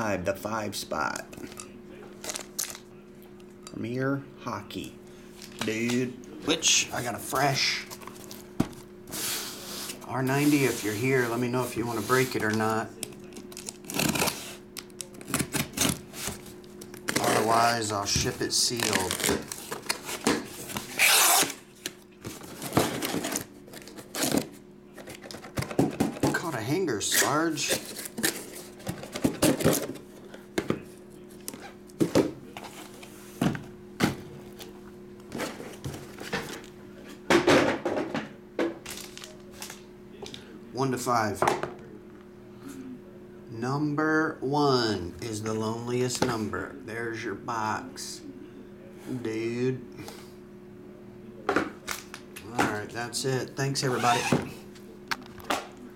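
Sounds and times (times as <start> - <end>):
faint steady hum: 0.0 - 55.9.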